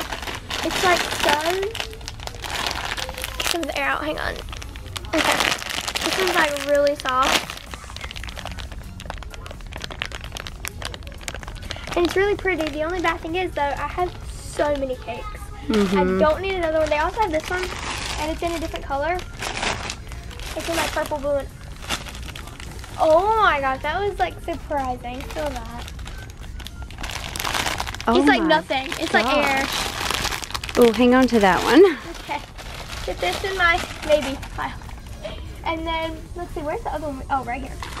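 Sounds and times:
plastic packaging crinkling: 0.0s - 35.5s, 37.6s - 38.0s.

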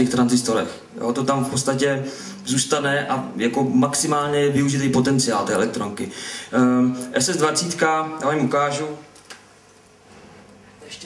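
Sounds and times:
man speaking: 0.0s - 9.1s.

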